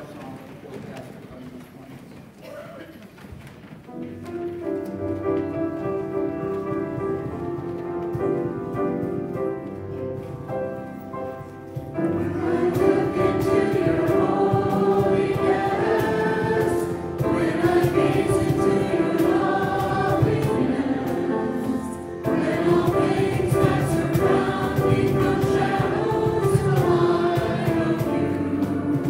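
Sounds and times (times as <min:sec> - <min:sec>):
musical accompaniment: 0:03.9 - 0:29.0
group singing worship song: 0:12.0 - 0:29.0.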